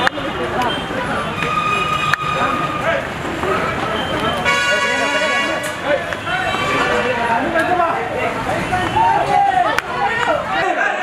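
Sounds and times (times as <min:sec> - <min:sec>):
crowd chatter: 0:00.0 - 0:11.0
vehicle horn: 0:04.4 - 0:07.4.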